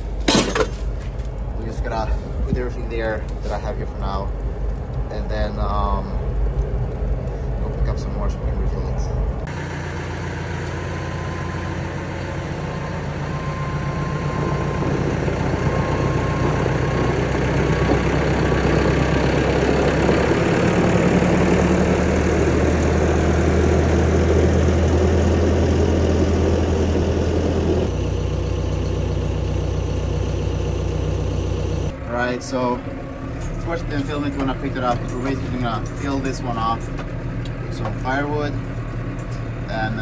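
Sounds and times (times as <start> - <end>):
tractor diesel engine running: 0.0 - 40.0.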